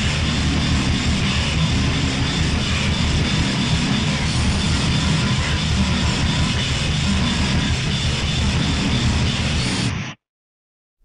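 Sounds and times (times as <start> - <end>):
harsh distorted noise music: 0.0 - 10.2.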